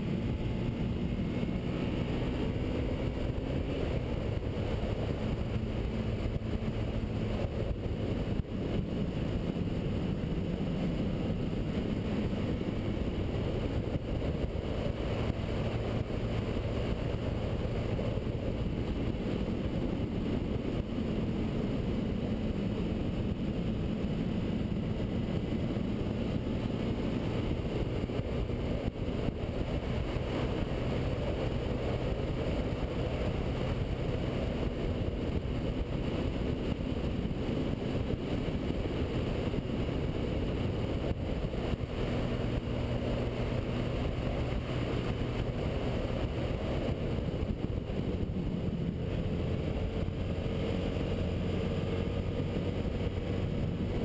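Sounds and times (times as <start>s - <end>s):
motorcycle engine running: 0.0s - 54.0s
wind noise rushing: 0.0s - 54.0s.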